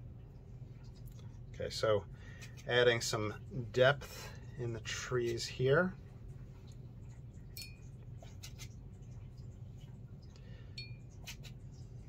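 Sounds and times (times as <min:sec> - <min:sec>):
steady low hum: 0:00.0 - 0:12.0
small ringing clinks: 0:07.6 - 0:07.9.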